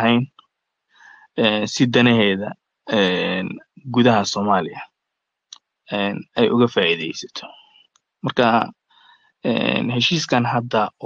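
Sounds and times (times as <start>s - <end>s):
man speaking: 0.0s - 0.3s, 1.4s - 4.8s, 5.9s - 7.6s, 8.2s - 8.7s, 9.5s - 11.0s.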